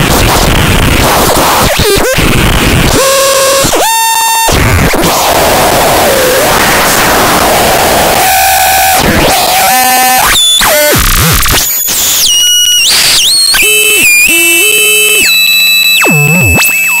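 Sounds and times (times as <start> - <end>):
harsh synth noise: 0.0 - 17.0.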